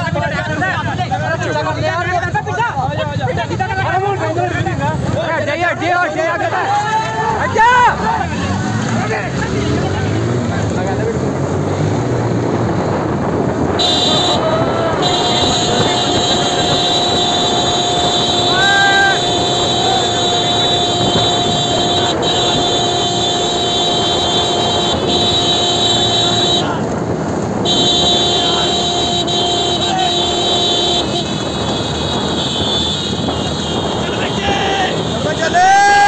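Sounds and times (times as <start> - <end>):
voices: 0.0 - 12.0, 12.8 - 36.0
motorcycle engines running: 0.0 - 36.0
wind rush: 11.5 - 36.0.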